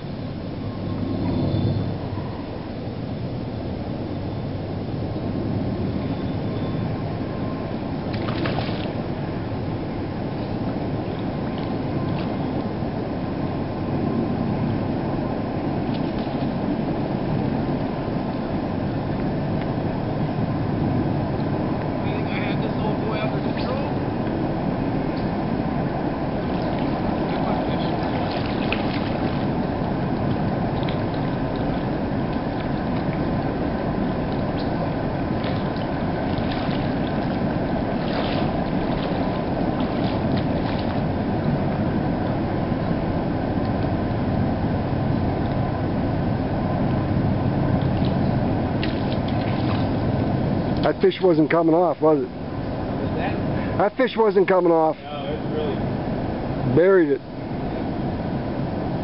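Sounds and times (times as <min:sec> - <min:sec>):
steady rushing water noise: 0:06.8 - 0:59.0
fish splashing at surface: 0:08.2 - 0:09.0, 0:48.8 - 0:50.0.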